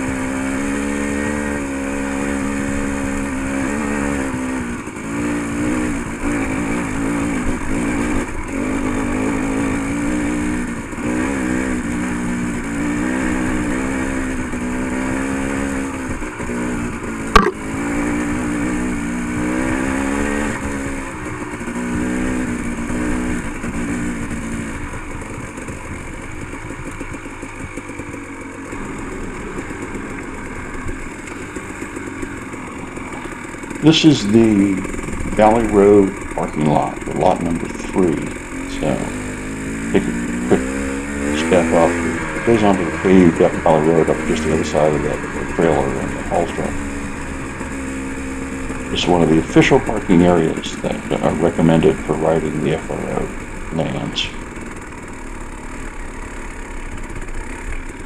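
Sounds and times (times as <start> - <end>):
dirt bike engine revving: 0.0 - 58.0
sharp knock: 17.3 - 17.6.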